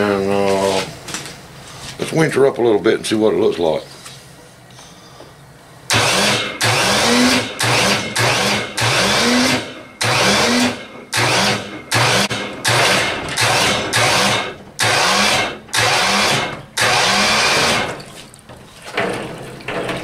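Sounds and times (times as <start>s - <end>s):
electric hoist whining in bursts: 5.9s - 18.0s.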